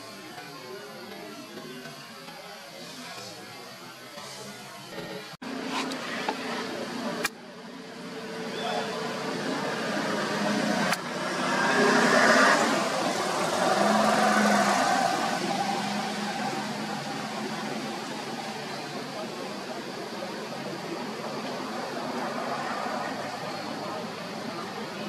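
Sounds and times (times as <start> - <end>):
rushing outdoor background noise: 0.0 - 25.0.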